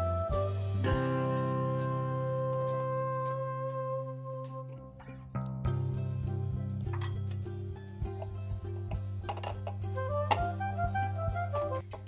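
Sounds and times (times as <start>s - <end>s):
instrumental music with held notes: 0.0s - 12.0s.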